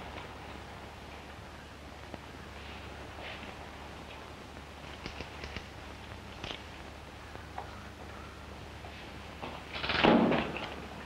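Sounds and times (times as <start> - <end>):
low film soundtrack hum: 0.0 - 11.0.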